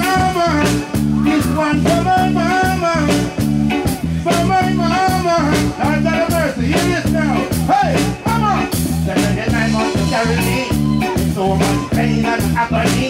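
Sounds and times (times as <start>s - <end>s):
live reggae band playing: 0.0s - 13.0s.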